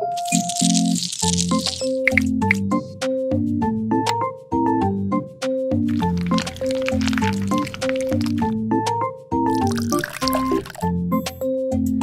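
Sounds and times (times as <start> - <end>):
lime wedge squirting: 0.0 - 2.6, 5.9 - 8.5, 9.5 - 10.9.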